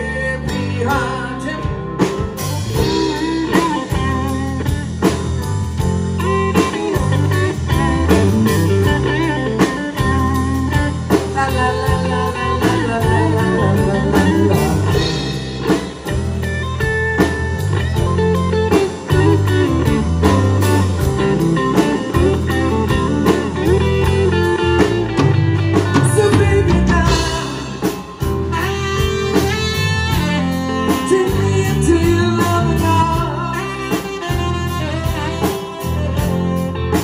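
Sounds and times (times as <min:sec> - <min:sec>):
bass guitar: 0:00.0 - 0:37.0
drum kit: 0:00.0 - 0:37.0
electric guitar: 0:00.0 - 0:37.0.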